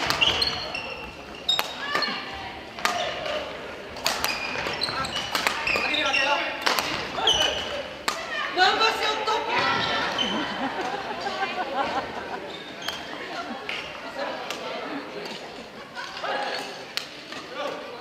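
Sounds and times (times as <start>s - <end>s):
sneakers squeaking: 0.0s - 14.1s, 14.7s - 17.5s
echoing voices: 0.0s - 18.0s
racket hitting shuttlecock: 2.8s - 3.4s, 4.0s - 6.0s, 6.6s - 8.3s.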